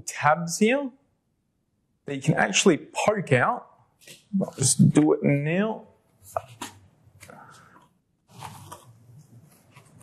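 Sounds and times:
card rustling and scraping: 0:08.3 - 0:10.0.

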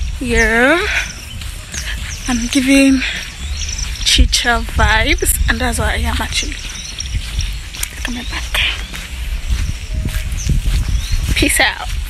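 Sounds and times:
footsteps on dirt path: 0:00.0 - 0:12.0.

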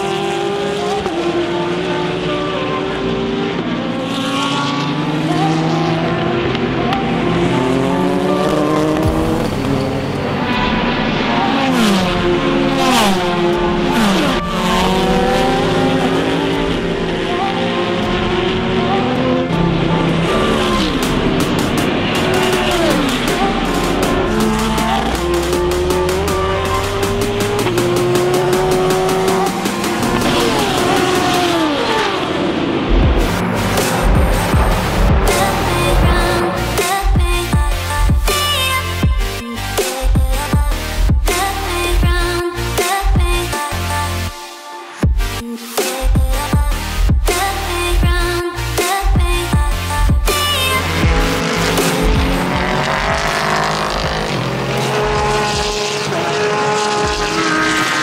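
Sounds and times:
race cars passing at speed: 0:00.0 - 0:38.0, 0:50.2 - 0:58.0.

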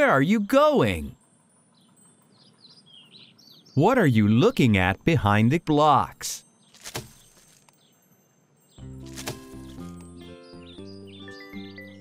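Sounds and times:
high bird chirps: 0:00.4 - 0:05.1, 0:06.4 - 0:12.0.

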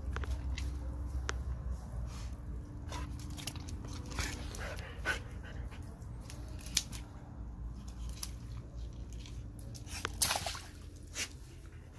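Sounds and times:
dog panting: 0:04.1 - 0:06.0.

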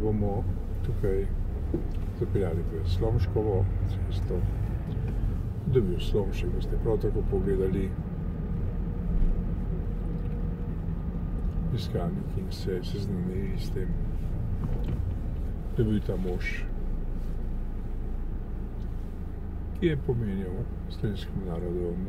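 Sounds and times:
car interior rumble: 0:00.0 - 0:22.0.

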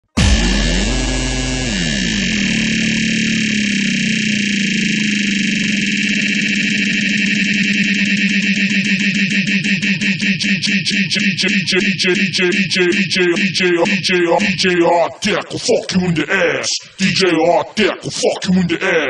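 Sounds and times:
harsh synthesizer drone: 0:00.0 - 0:19.0.

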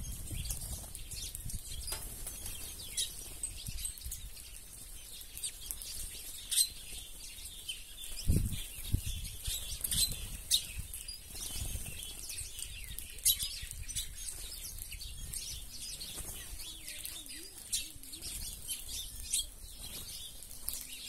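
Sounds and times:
birds chirping: 0:00.0 - 0:21.0
wings flapping: 0:09.5 - 0:12.6, 0:15.8 - 0:21.0.

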